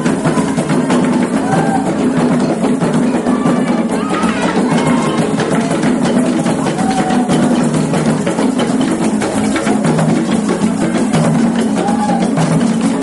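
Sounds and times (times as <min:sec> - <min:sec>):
hand drums ensemble: 0:00.0 - 0:13.0.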